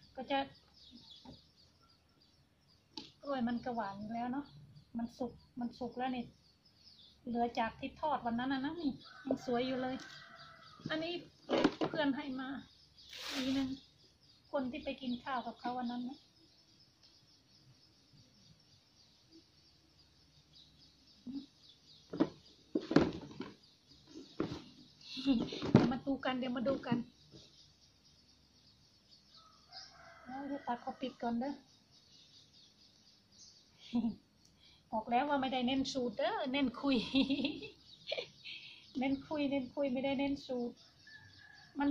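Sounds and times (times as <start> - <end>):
faint bird chirps: 0.0 - 41.9.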